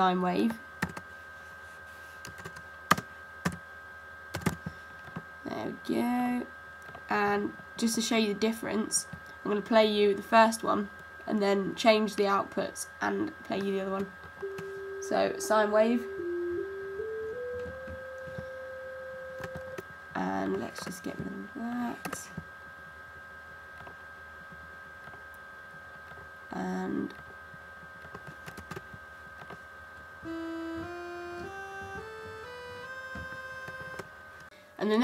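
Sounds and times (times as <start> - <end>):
pure sine-wave tone: 0.0 - 35.0
sawtooth synth notes: 14.4 - 19.8, 30.2 - 34.2.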